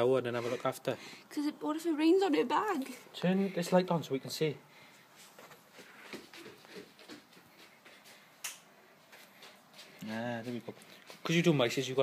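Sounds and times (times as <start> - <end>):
faint rustling: 4.7 - 11.9.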